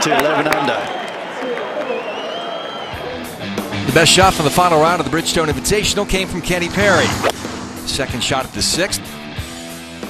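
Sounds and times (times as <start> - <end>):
crowd noise: 0.0 - 9.2
background music with guitar: 3.2 - 6.8, 7.4 - 10.0.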